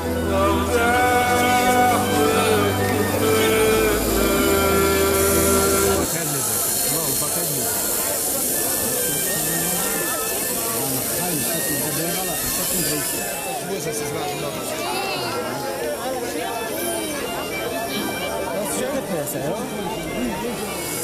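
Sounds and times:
music with long held notes: 0.0 - 6.2
crowd chatter: 0.0 - 21.0.

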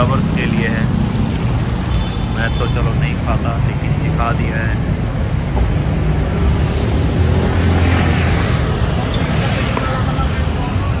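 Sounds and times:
cars and scooters passing: 0.0 - 11.0.

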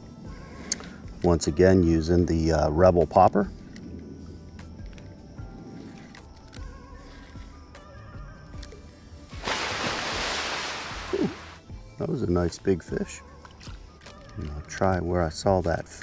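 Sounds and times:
faint background music: 0.0 - 16.0
fish splashing out of water: 9.4 - 11.6.

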